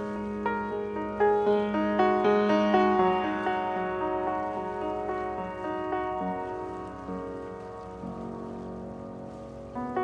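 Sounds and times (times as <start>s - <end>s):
slow quiet piano notes: 0.0s - 10.0s.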